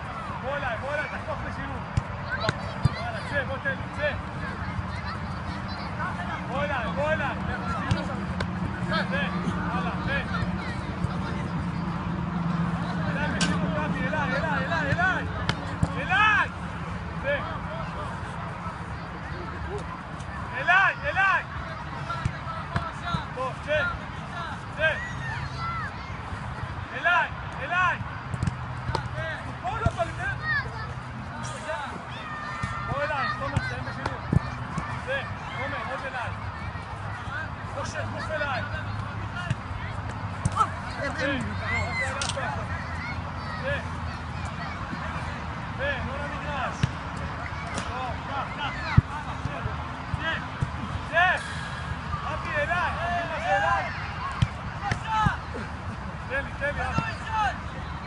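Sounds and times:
distant players shouting: 0.0 - 58.0
footballs being struck: 7.7 - 8.8, 28.0 - 29.2, 46.7 - 48.0, 54.4 - 55.4
soccer ball kick thumps: 28.3 - 29.1, 46.7 - 47.0
shouted calls: 41.5 - 42.2.

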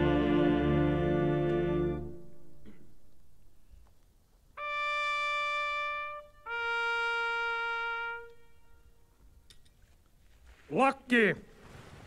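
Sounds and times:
trumpet two-note call: 4.6 - 9.1.

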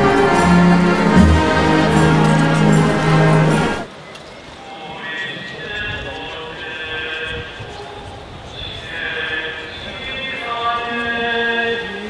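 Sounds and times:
voices singing a slow hymn: 0.0 - 3.9, 5.0 - 12.0
murmur of crowd: 0.0 - 12.0.

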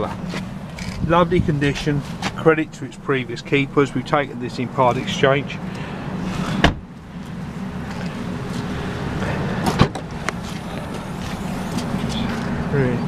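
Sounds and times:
steady low rumble: 0.0 - 13.0
car door shutting with thump: 6.6 - 6.9, 9.6 - 10.1.

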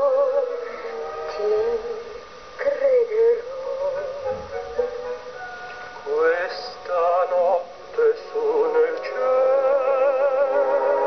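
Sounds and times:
man singing operetta melody: 0.0 - 5.1, 6.0 - 11.0.

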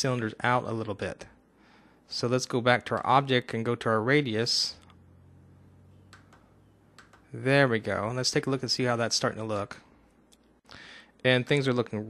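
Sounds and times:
faint room hum: 0.0 - 12.0
faint mouse clicks: 6.1 - 7.3.

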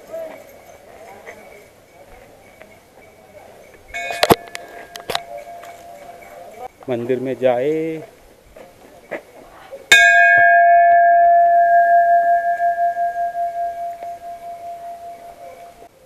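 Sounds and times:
large metal bell ringing: 0.0 - 6.7, 9.9 - 15.9.

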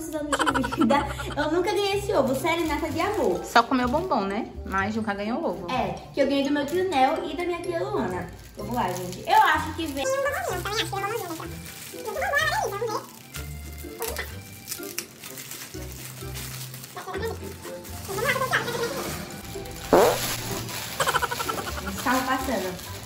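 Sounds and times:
background music: 0.0 - 23.0
foil wrapping crinkling and tearing: 0.3 - 4.7, 6.7 - 23.0.

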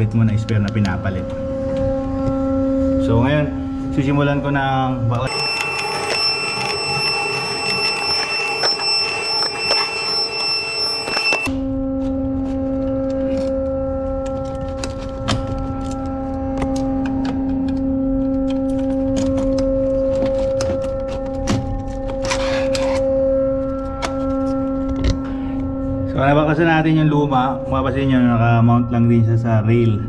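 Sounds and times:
machinery hum: 0.0 - 14.2.

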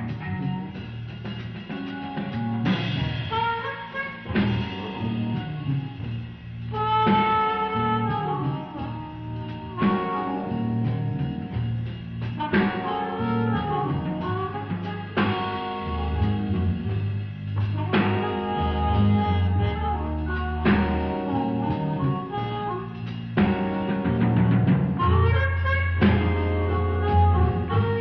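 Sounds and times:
blues band playing: 0.0 - 28.0
amplified harmonica bending notes: 2.1 - 28.0.

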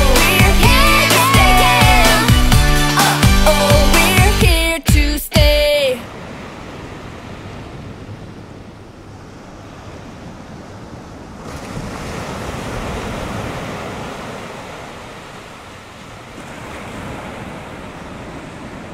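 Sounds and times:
waves breaking: 5.5 - 18.9.

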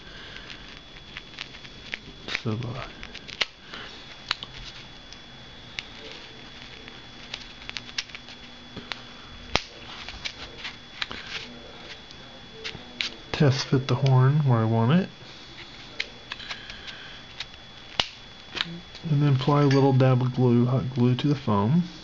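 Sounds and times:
faint high whine: 0.0 - 22.0.

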